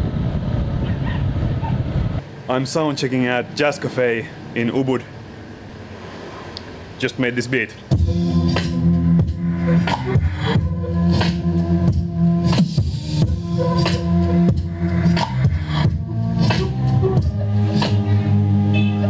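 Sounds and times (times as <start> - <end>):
steady drum pattern: 7.9 - 18.0
low bass and chord tones: 7.9 - 19.0.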